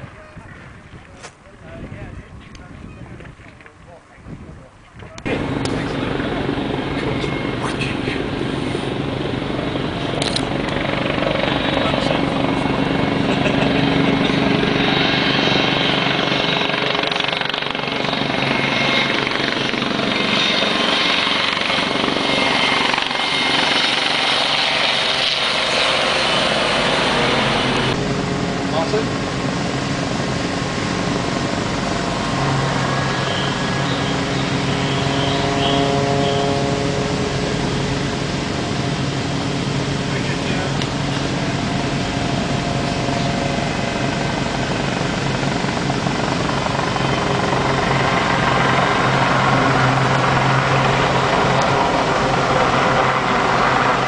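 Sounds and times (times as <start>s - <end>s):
helicopter rotor and turbine: 0.0s - 54.0s.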